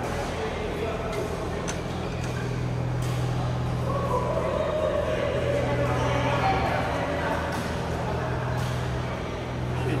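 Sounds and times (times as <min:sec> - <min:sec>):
indoor hall hum: 0:00.0 - 0:10.0.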